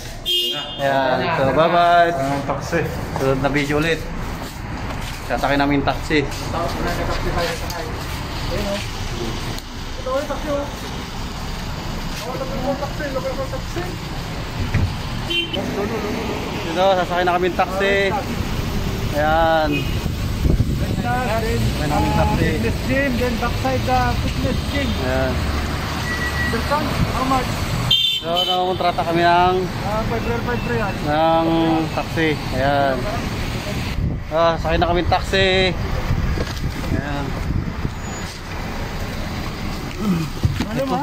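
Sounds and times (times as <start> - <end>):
low traffic rumble: 0.0 - 41.0
people talking: 0.5 - 4.1, 5.3 - 10.9, 12.1 - 14.1, 15.6 - 20.0, 20.6 - 25.5, 26.4 - 27.6, 28.2 - 36.0, 36.8 - 37.4, 39.9 - 41.0
car engine idling: 5.7 - 25.3.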